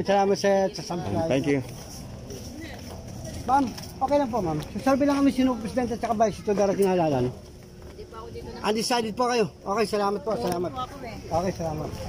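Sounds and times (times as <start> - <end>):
distant market voices: 0.0 - 12.0.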